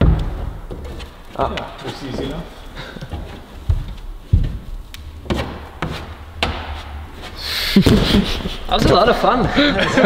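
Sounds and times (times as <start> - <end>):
shoes knocking on climbing holds: 0.0 - 6.9.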